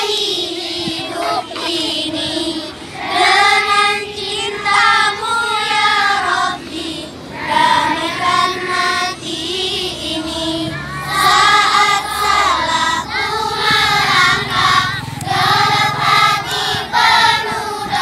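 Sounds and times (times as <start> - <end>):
children singing: 0.0 - 18.0.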